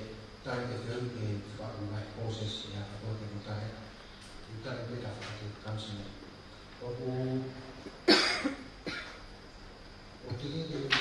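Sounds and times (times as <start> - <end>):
man coughing: 8.0 - 9.2.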